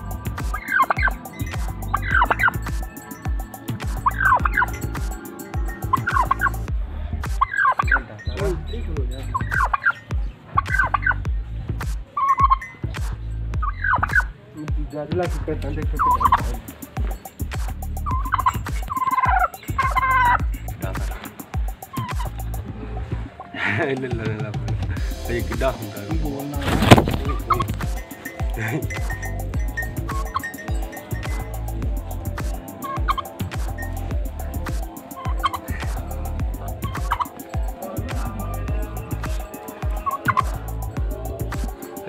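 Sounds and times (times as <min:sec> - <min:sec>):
turkey gobbling: 0:00.0 - 0:06.7, 0:07.4 - 0:08.2, 0:09.3 - 0:11.2, 0:12.2 - 0:12.9, 0:13.6 - 0:14.4, 0:16.0 - 0:22.5, 0:25.0 - 0:42.0
music with a steady beat: 0:00.0 - 0:42.0.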